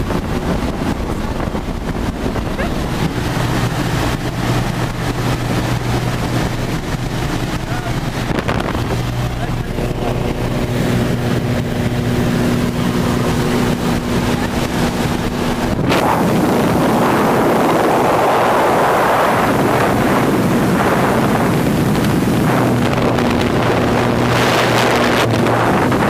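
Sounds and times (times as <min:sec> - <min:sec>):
light aircraft engine droning: 0:00.0 - 0:26.0
loud rush of wind: 0:00.0 - 0:26.0.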